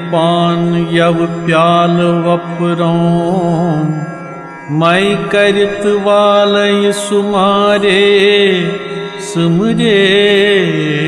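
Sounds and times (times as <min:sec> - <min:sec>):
man singing devotional song: 0:00.0 - 0:11.0.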